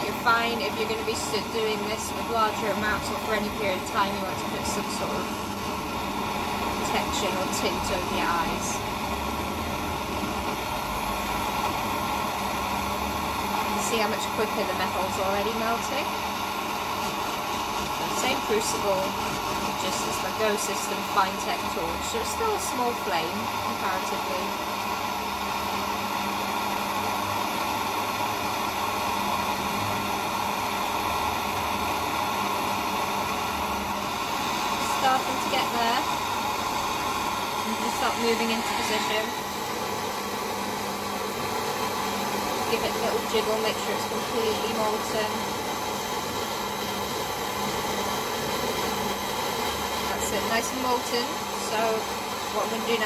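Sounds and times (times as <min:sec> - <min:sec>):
gas torch hissing: 0:00.0 - 0:53.0.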